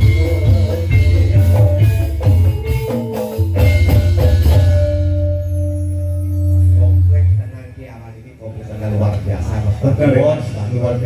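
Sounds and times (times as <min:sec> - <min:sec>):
traditional dance music: 0:00.0 - 0:07.8.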